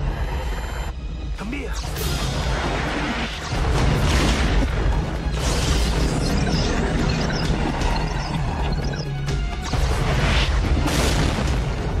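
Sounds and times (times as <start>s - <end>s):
action film music: 0.0s - 12.0s
explosion booms: 10.8s - 12.0s.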